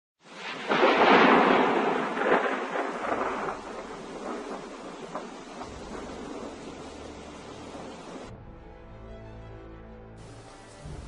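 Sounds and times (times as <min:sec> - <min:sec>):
thunder rumble: 0:00.2 - 0:08.6.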